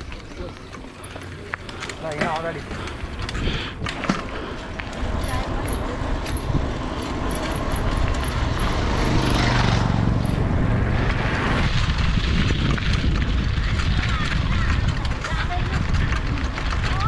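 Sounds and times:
bicycle tyre rumble on road: 0:00.0 - 0:17.0
motorbike engine passing: 0:02.5 - 0:17.0
wind over microphone: 0:02.7 - 0:17.0.

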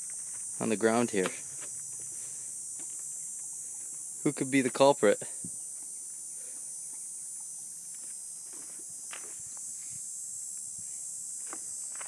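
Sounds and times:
high-pitched insect chorus: 0:00.0 - 0:12.0
hooves scuffing on gravel: 0:07.9 - 0:09.8.

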